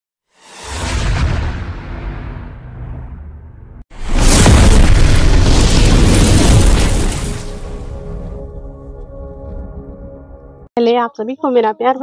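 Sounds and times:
cinematic boom rumbling: 0.6s - 9.8s.

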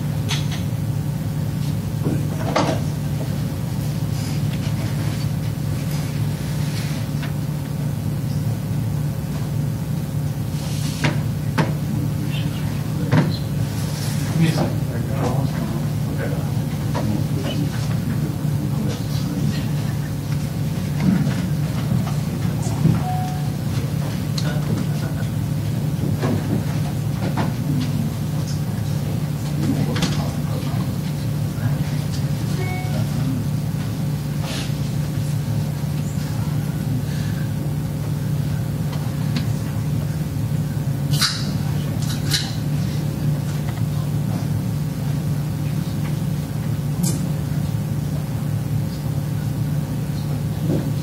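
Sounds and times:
low room hum: 0.0s - 51.0s
faint voices: 11.7s - 33.7s.

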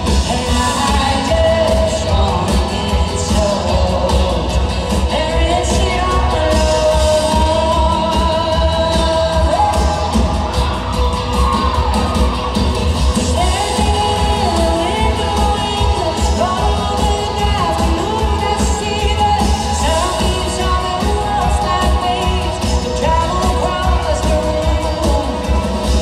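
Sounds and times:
heavy bass and drums: 0.0s - 26.0s
woman singing: 0.0s - 26.0s.

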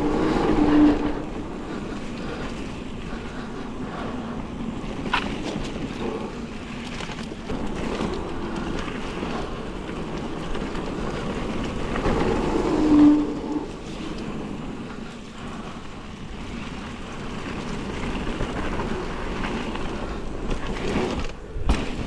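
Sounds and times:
bike rattling: 0.0s - 22.0s
bike tyre rumble on dirt: 0.0s - 22.0s
wind on microphone: 0.0s - 22.0s.

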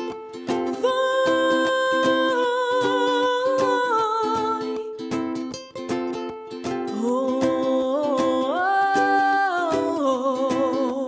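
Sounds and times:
strummed ukulele: 0.0s - 11.0s
woman singing wordless melody: 0.4s - 5.3s, 6.7s - 11.0s.

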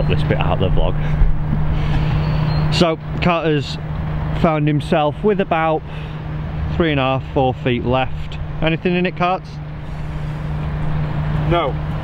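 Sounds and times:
low motor drone: 0.0s - 12.0s.

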